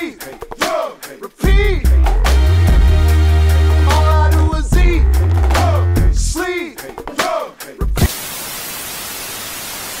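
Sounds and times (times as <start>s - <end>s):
television static hiss: 8.0s - 10.0s.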